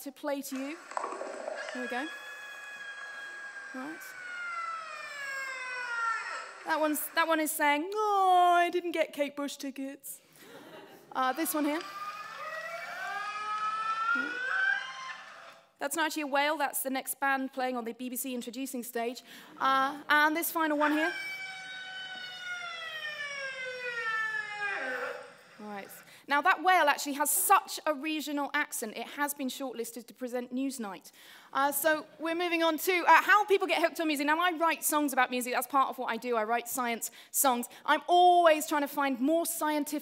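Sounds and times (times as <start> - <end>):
whale call: 0.5 - 7.4, 11.3 - 15.7, 20.6 - 26.0.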